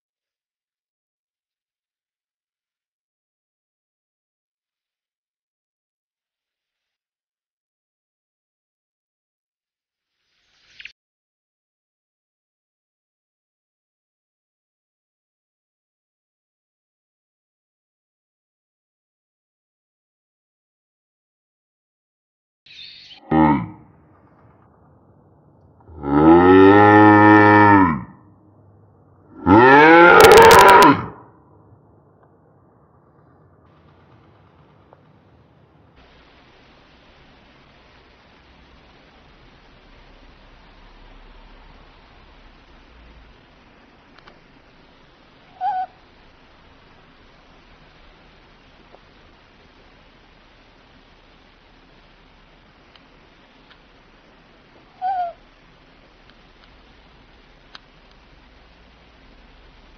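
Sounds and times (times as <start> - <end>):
low animal calls: 23.0 - 23.9, 29.3 - 31.3, 45.4 - 46.1, 54.8 - 55.6
owl hoot: 45.4 - 46.0, 54.9 - 55.4.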